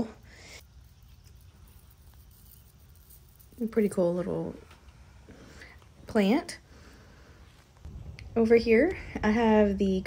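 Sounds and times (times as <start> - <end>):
wheat heads rustling: 0.6 - 4.2.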